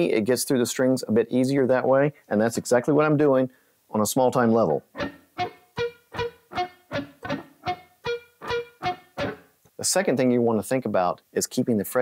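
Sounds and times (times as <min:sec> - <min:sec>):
electric guitar arpeggio: 0:05.0 - 0:09.4.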